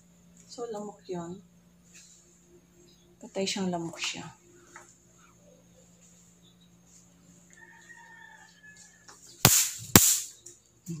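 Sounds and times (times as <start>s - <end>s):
electric swatter snapping: 9.5s - 10.4s.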